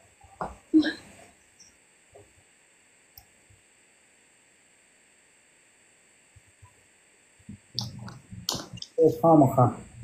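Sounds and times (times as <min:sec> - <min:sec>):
person making short vocal sounds: 0:00.7 - 0:01.1.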